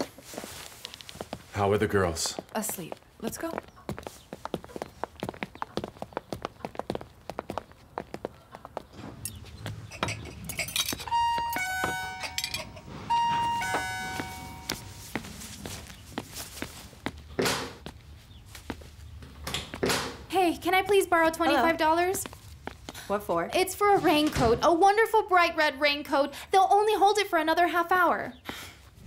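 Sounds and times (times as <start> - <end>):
electronic doorbell chime: 11.0 - 15.1.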